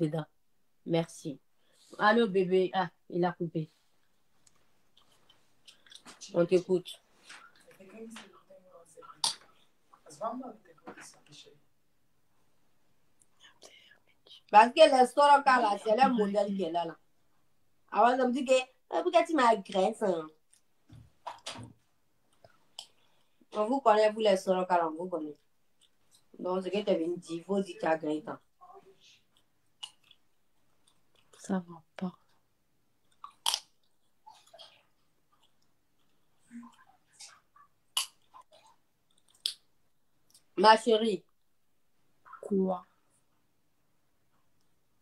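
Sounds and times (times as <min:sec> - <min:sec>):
woman speaking: 0:00.0 - 0:00.3, 0:00.9 - 0:03.8, 0:06.2 - 0:07.0, 0:14.3 - 0:17.0, 0:17.9 - 0:20.3, 0:23.5 - 0:25.4, 0:26.4 - 0:29.1, 0:31.4 - 0:32.2, 0:42.4 - 0:42.9
faint whisper: 0:13.4 - 0:14.5.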